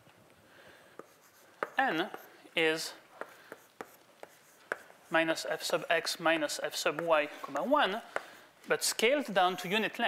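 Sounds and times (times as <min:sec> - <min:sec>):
chalk tapping on blackboard: 0:01.0 - 0:02.3, 0:03.2 - 0:08.4.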